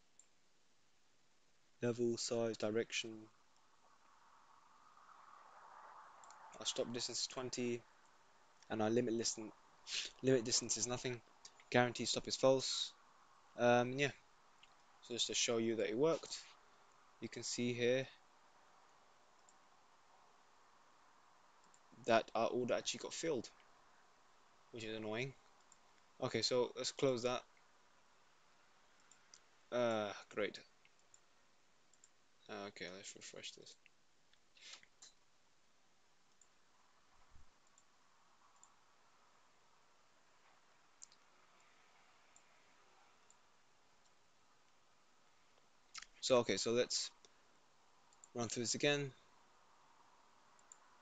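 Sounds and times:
computer mouse clicks: 0:06.2 - 0:06.5, 0:41.0 - 0:41.2, 0:50.6 - 0:50.9
faint computer mouse clicks: 0:50.6 - 0:50.9.

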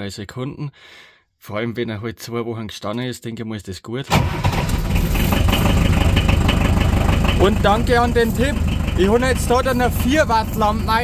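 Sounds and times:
diesel engine idling: 0:04.2 - 0:11.0.

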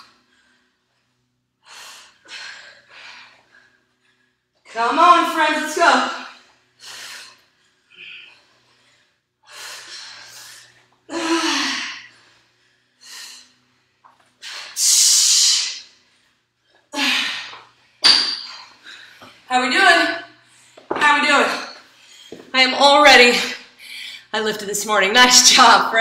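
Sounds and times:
woman breathing hard: 0:00.0 - 0:04.8, 0:06.2 - 0:19.5.

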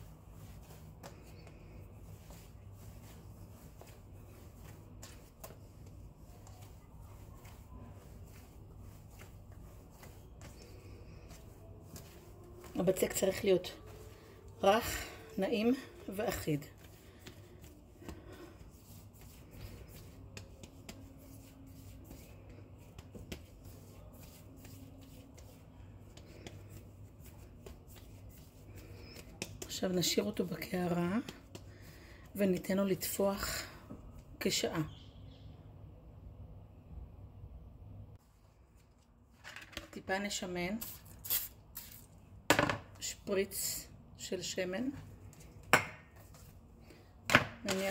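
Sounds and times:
hands patting dough: 0:00.0 - 0:33.2.

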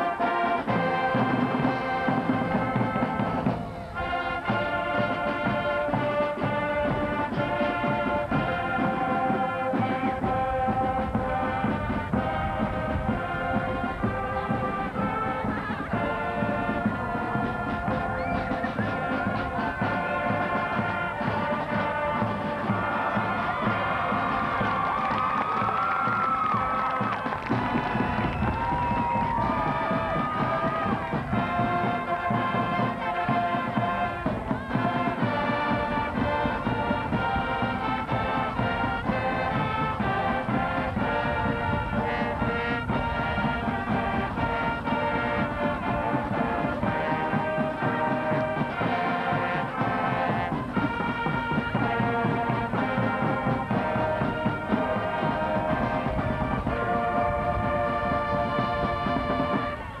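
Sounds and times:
marching band playing brass: 0:00.0 - 1:00.0.

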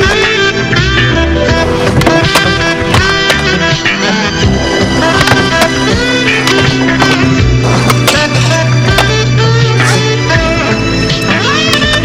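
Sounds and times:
skateboard clacks: 0:00.0 - 0:12.0
skateboard wheels rolling: 0:00.0 - 0:12.0
song with low bass: 0:00.0 - 0:12.0.

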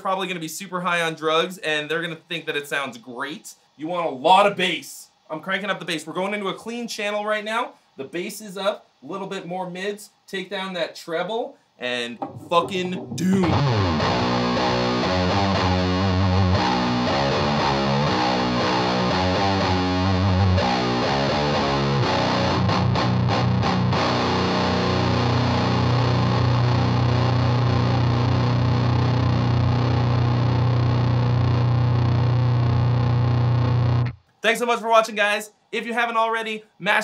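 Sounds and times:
fuzzed electric guitar riff: 0:12.0 - 0:34.2.

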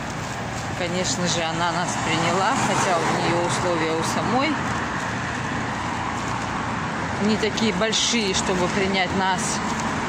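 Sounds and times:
slow city traffic: 0:00.0 - 0:10.0.

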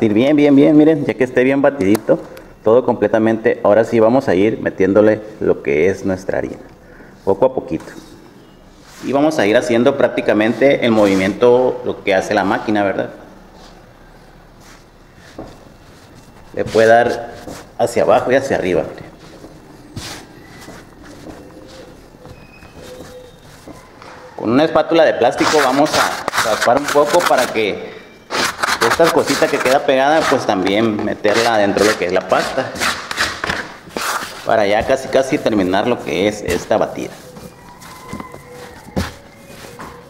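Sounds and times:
hands pressing and patting dough: 0:14.7 - 0:24.3, 0:25.3 - 0:27.6, 0:28.3 - 0:40.0.

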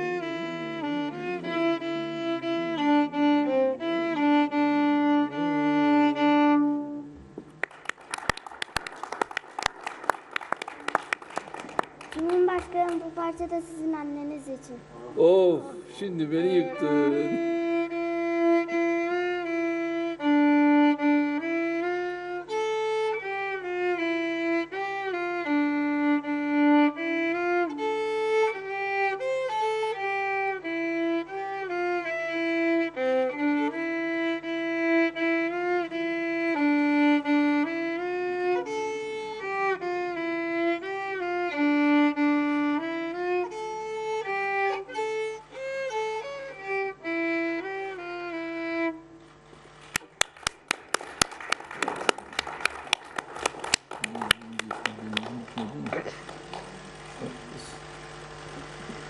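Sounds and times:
solo violin melody: 0:00.0 - 0:07.2, 0:16.0 - 0:50.2
applause: 0:07.6 - 0:13.2, 0:49.8 - 0:57.3.

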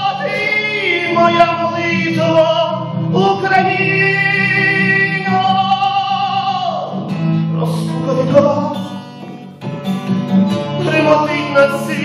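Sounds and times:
man singing: 0:00.0 - 0:09.5, 0:10.6 - 0:12.0
strummed acoustic guitar: 0:00.0 - 0:12.0.

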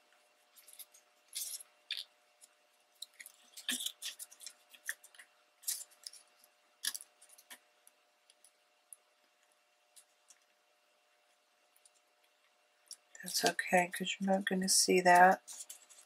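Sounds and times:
paper rustling and scraping: 0:15.2 - 0:16.0.

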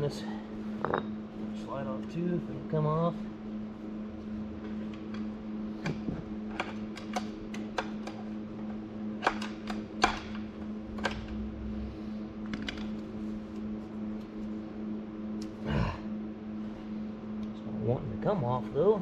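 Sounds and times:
steady hum: 0:00.0 - 0:19.0.

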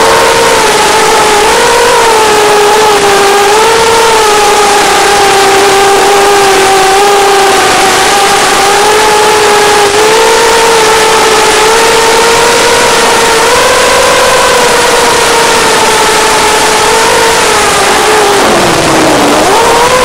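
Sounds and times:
drone motors and propellers whining: 0:00.0 - 0:20.0.

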